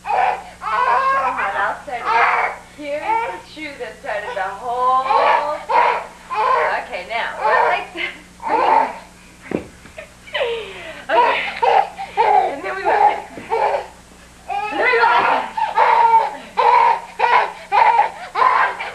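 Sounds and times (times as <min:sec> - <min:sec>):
faint steady hum: 0:00.0 - 0:18.9
thump: 0:09.5 - 0:09.8.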